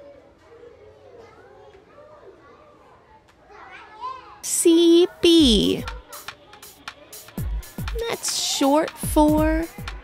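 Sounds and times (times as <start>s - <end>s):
faint children's voices chatter: 0.0s - 10.0s.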